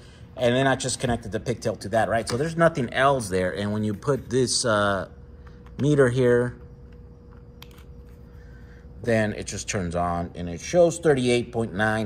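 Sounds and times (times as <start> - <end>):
faint steady tone: 4.4 - 11.2.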